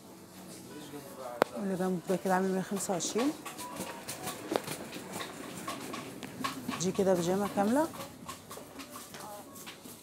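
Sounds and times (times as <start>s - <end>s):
woman's voice: 1.6s - 3.4s, 6.8s - 8.0s.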